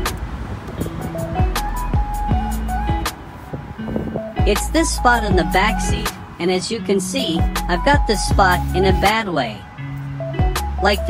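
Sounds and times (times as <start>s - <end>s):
held synth notes: 0.0s - 11.0s.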